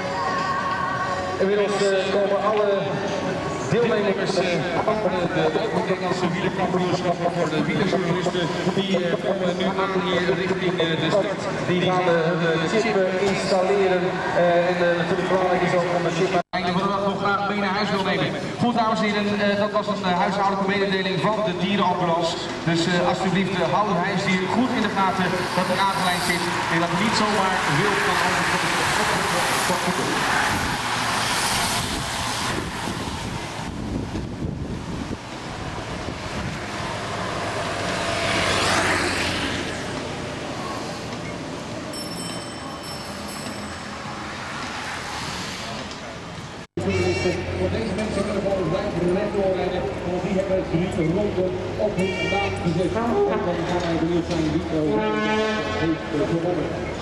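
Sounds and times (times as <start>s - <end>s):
man announcing over loudspeaker: 1.2s - 30.8s, 46.8s - 57.0s
cyclists riding past: 21.8s - 54.6s
wind on microphone: 31.6s - 37.4s.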